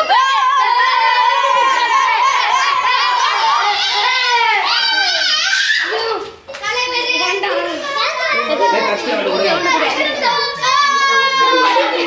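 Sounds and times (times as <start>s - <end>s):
boys shouting and cheering: 0.0s - 12.0s.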